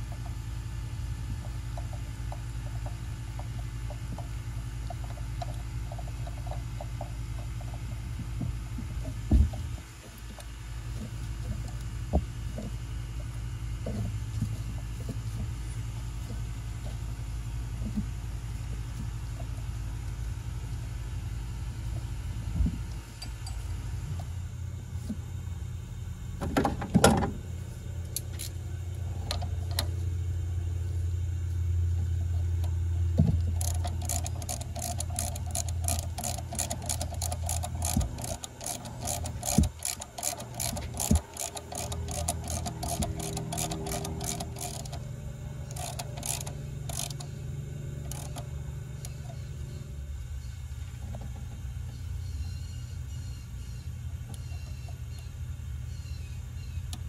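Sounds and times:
steady low hum: 0.0s - 57.0s
ratchet clicks: 33.4s - 49.4s.

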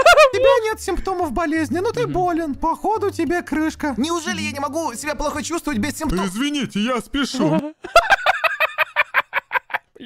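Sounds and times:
man laughing hard: 0.0s - 0.6s, 7.4s - 9.9s.

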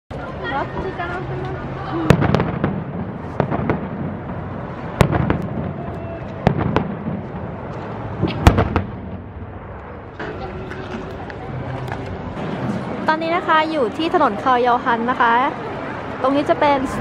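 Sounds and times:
fireworks bangs and cracks: 1.4s - 13.1s.

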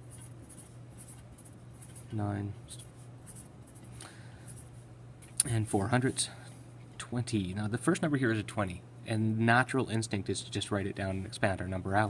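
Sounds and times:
pencil scratching on paper: 0.0s - 2.1s
low steady hum: 0.0s - 12.0s.

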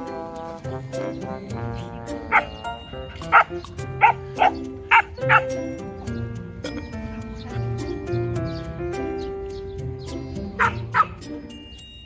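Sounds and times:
background music: 0.0s - 12.0s
dog barking: 2.3s - 2.6s, 3.2s - 5.6s, 10.6s - 11.2s.

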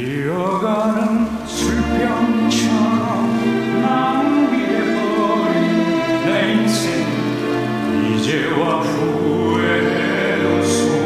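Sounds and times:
orchestral accompaniment: 0.8s - 11.0s.

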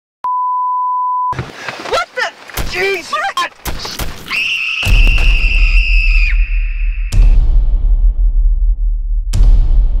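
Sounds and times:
noisy film soundtrack: 2.6s - 10.0s.

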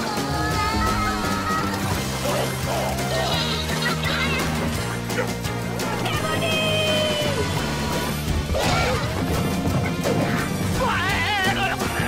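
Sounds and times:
cartoon music: 0.1s - 12.0s.

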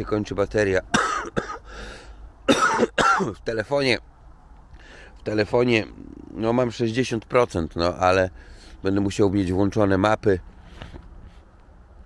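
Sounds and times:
man coughing: 0.9s - 1.8s, 2.5s - 3.4s.

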